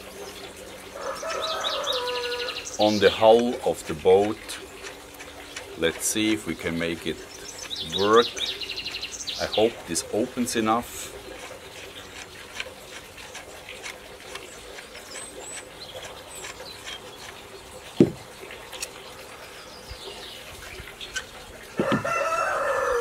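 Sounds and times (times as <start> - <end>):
songbird chirps: 0.0 - 23.0
rooster crowing: 1.0 - 2.7, 21.8 - 23.0.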